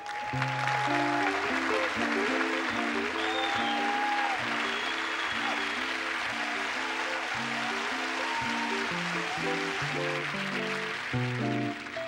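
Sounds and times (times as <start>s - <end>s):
audience applause: 0.0s - 12.0s
electric guitar playing jazz chords: 0.4s - 12.0s.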